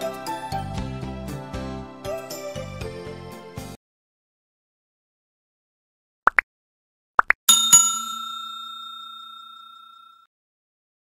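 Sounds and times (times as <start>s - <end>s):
small notification bell ringing: 7.5s - 10.3s.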